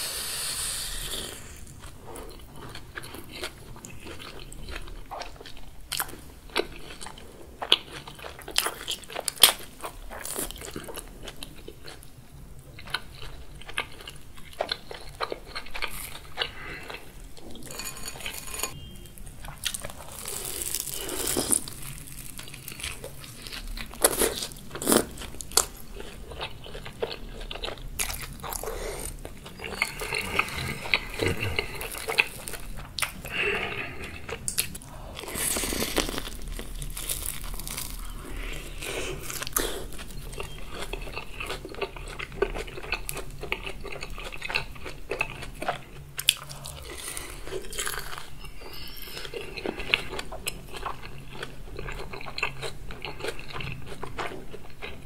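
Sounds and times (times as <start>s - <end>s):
chewing: 1.0s - 18.8s, 19.4s - 55.0s
fried crust crunching: 12.7s - 55.0s
wet mouth sounds: 28.6s - 36.4s.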